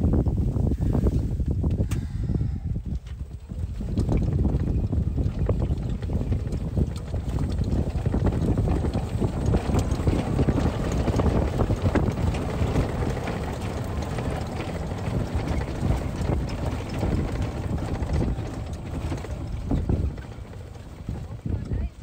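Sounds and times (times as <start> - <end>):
wind buffeting microphone: 0.0 - 22.0
golf cart driving: 2.8 - 22.0.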